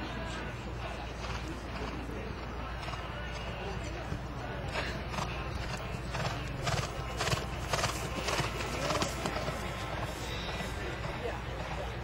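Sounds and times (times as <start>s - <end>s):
horse hoofbeats on grass: 2.8s - 12.0s.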